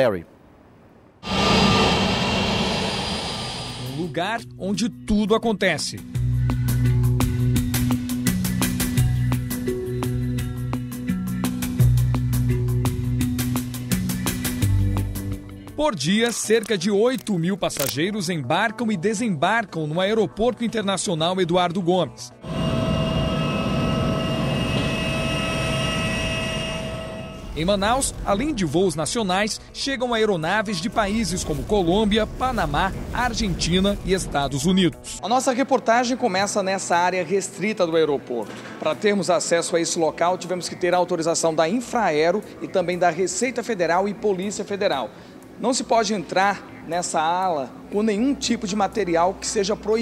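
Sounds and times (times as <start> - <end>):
jet engines roaring with whine: 1.2 - 4.2, 22.4 - 27.8.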